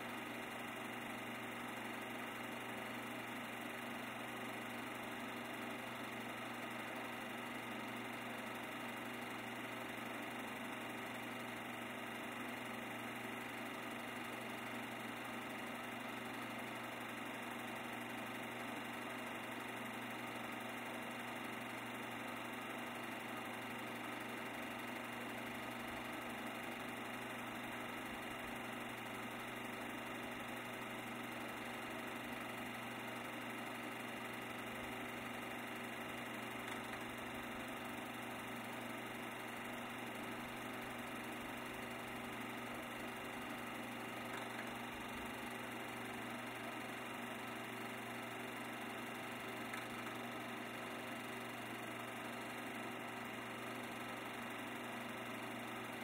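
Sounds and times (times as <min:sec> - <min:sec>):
mechanical whirr with low hum: 0:00.0 - 0:56.0.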